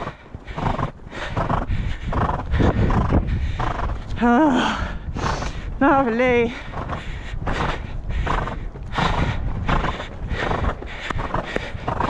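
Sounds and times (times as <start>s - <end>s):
hoofbeats on sand: 0.0s - 4.4s, 5.2s - 12.0s
horse breathing out: 0.0s - 5.8s, 6.4s - 12.0s.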